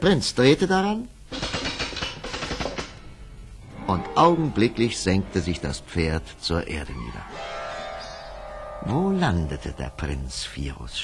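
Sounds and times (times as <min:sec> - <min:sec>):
rapid rattling drum roll: 0:01.3 - 0:03.0.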